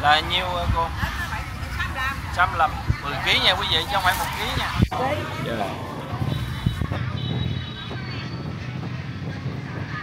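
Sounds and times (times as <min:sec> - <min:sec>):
vendors and shoppers voices: 0:00.0 - 0:10.0.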